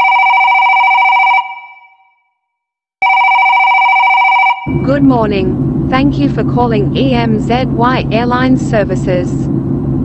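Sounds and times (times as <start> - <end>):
telephone ringing: 0.0 - 2.2, 3.0 - 5.0.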